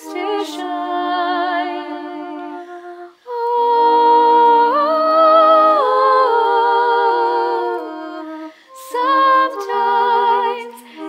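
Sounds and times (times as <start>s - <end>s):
voices humming in harmony: 0.0s - 11.0s.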